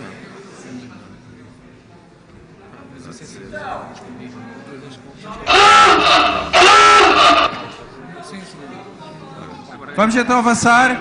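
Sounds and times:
loud buzzer blasts: 5.5s - 7.9s.

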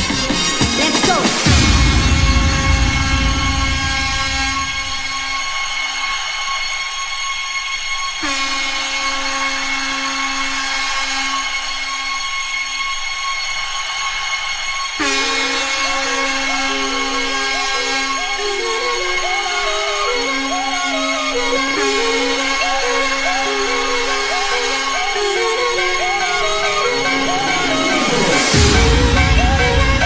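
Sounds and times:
dance music bass and beat: 0.0s - 6.8s, 10.8s - 30.0s
sustained synthesizer chords: 1.4s - 30.0s.

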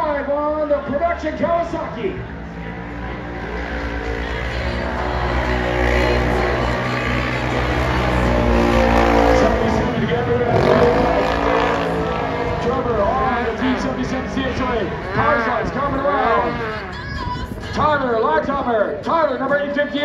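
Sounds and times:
engine running at high revs: 0.0s - 18.0s.

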